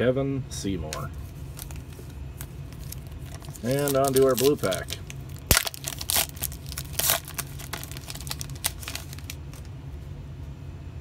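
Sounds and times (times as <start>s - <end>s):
plastic wrapper tearing and crinkling: 1.4s - 9.7s.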